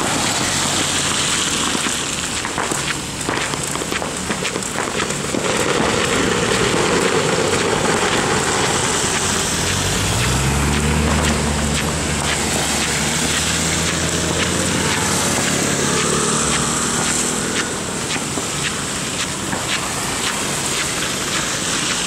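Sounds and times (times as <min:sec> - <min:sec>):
rain: 0:00.0 - 0:22.0
raindrops ticking: 0:00.0 - 0:22.0
wind: 0:00.0 - 0:22.0
car engine running: 0:05.4 - 0:22.0.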